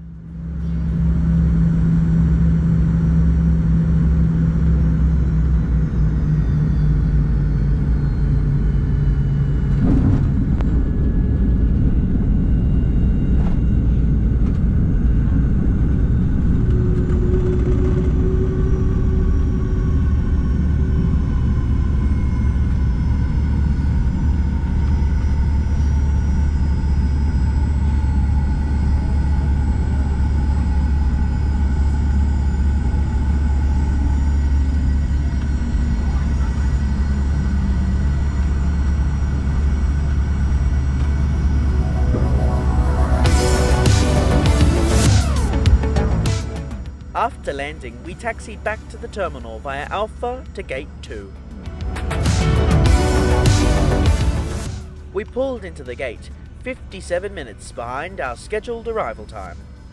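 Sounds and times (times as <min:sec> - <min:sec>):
faint engine tones: 0:00.0 - 0:59.9
jet engine and airflow rumble: 0:00.0 - 0:59.9.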